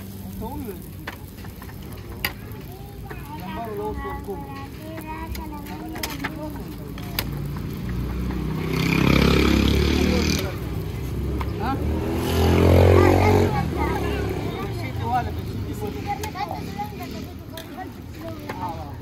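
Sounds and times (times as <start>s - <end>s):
motor vehicles passing: 0.0s - 19.0s.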